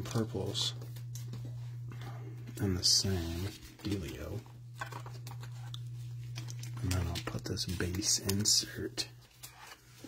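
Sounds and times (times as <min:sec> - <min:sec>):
steady low hum: 0:00.0 - 0:10.0
trading cards clicking and rustling: 0:02.5 - 0:10.0.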